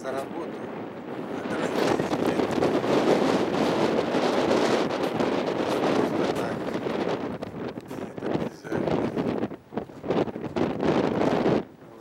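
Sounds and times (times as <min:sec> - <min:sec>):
strong wind buffeting microphone: 0:00.0 - 0:12.0.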